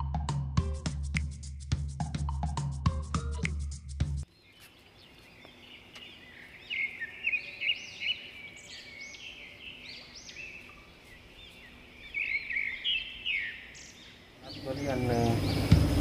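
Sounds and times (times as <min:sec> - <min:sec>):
birds chirping: 0:04.2 - 0:16.0.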